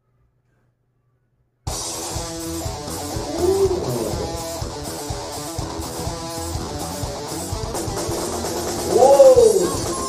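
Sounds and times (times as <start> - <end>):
electric guitar riff: 1.7 - 9.9
bass guitar: 1.7 - 10.0.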